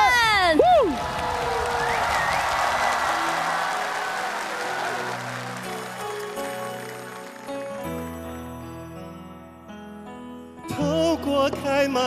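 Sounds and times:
audience applauding and cheering: 0.0 - 8.5
soft keyboard music: 3.0 - 12.0.

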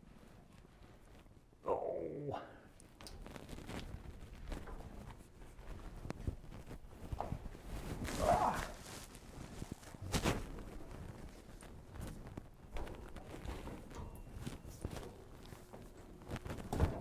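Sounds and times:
clothes rubbing: 3.2 - 17.0.

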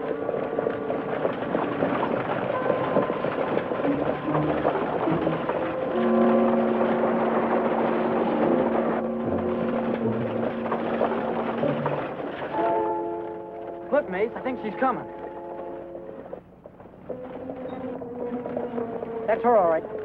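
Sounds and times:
background music with sustained notes: 0.0 - 20.0
galloping hooves and wheels rumble: 0.0 - 20.0.

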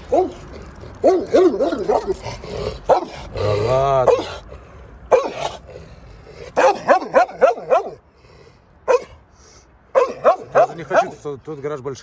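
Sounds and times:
large dog barking: 0.0 - 3.4, 4.0 - 4.4, 5.1 - 5.6, 6.4 - 8.0, 8.8 - 9.2, 9.9 - 11.2.

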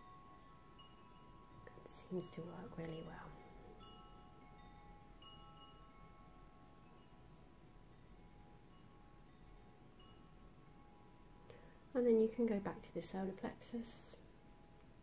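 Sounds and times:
soft ringing chime notes: 0.0 - 15.0.

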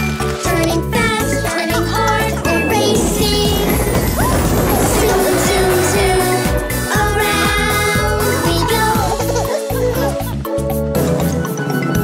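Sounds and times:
children's song music: 0.0 - 12.0.

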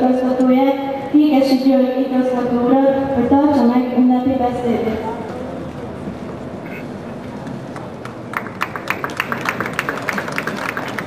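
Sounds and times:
sparse applause: 7.7 - 11.0.

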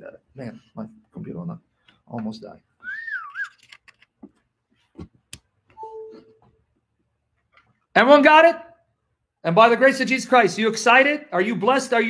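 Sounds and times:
wavering whistle-like tone: 2.8 - 3.6, 5.8 - 6.4
chime-like tone: 5.8 - 6.4.

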